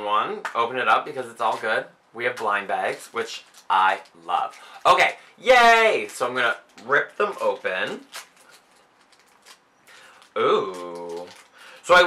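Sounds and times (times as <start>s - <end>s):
small crackles: 1.4s - 12.0s
packaging rustling: 2.3s - 12.0s.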